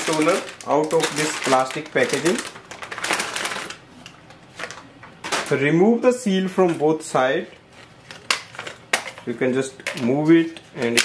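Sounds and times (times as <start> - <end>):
plastic packaging crinkling: 0.0 - 5.7, 7.6 - 11.0.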